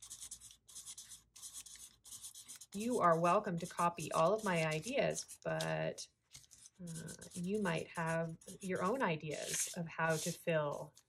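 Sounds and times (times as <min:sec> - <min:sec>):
marker scratching on paper: 0:00.0 - 0:05.8, 0:06.4 - 0:10.4.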